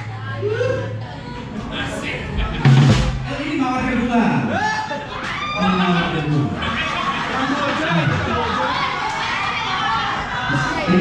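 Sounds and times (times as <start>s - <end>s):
drum kit playing: 2.2s - 4.1s
cymbal and bass drum accent: 2.3s - 4.1s.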